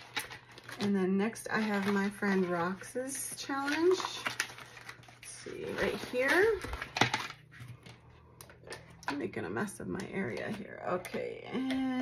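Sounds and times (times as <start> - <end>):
pages turning: 3.5 - 8.9.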